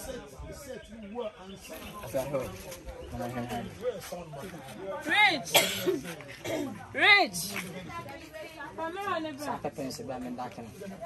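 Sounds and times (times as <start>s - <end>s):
person coughing: 5.5s - 6.8s.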